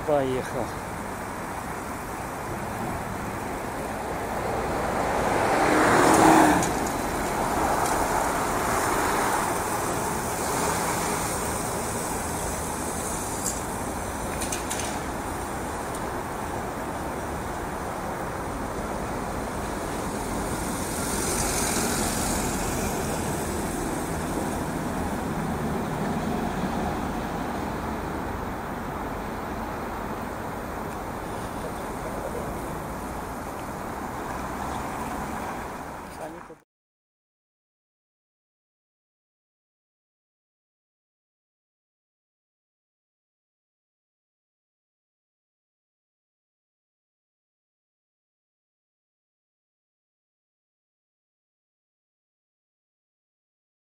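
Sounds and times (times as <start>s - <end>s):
city road traffic: 0.0s - 36.6s
vehicle passing close by: 2.5s - 13.4s, 18.4s - 36.5s.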